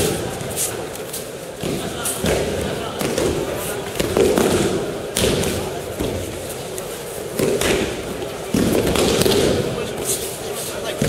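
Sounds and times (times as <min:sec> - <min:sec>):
background chatter in echoing hall: 0:00.0 - 0:11.0.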